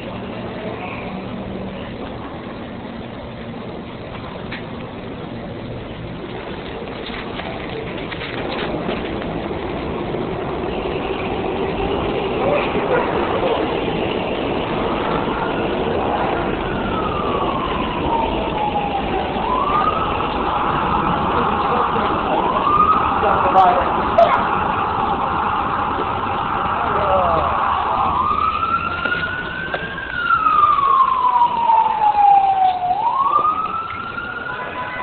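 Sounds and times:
emergency vehicle siren wailing: 4.2s - 35.0s.

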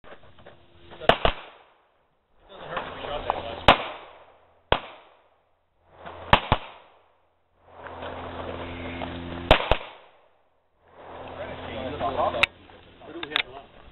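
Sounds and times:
handgun shots: 1.1s - 1.7s, 3.7s - 5.2s, 6.3s - 7.0s, 9.5s - 10.1s.

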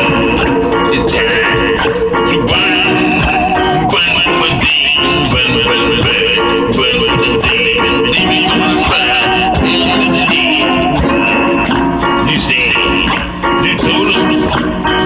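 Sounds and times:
wavering vibrato melody: 0.0s - 13.1s
loud music with percussion: 0.0s - 15.0s.

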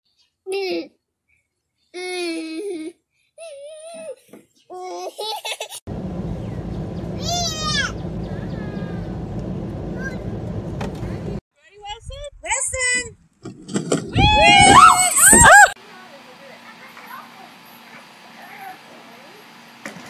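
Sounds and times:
babies babbling and squealing: 2.0s - 5.2s
low rushing noise: 5.9s - 11.4s.

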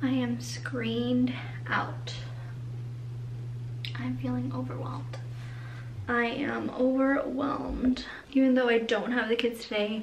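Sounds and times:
woman speaking: 0.0s - 2.5s, 3.8s - 5.3s, 6.0s - 10.0s
steady low hum: 0.0s - 10.0s.

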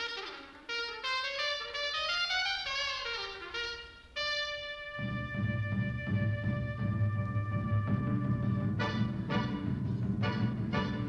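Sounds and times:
trumpet playing: 0.0s - 11.0s
low drum roll: 4.9s - 11.0s.

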